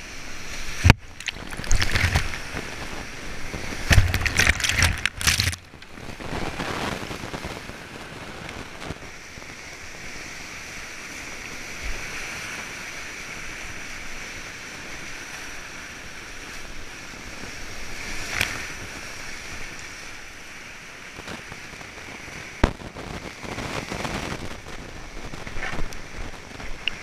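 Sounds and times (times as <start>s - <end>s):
kayak splashing through waves: 0.0s - 27.0s.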